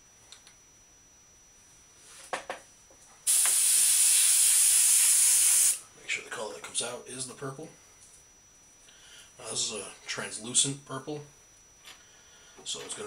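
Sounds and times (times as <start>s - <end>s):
airbrush spraying hiss: 3.3s - 5.8s.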